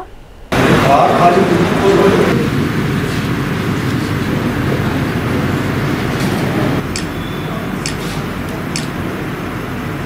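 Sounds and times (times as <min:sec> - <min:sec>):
loud rumble and hiss: 0:00.0 - 0:10.0.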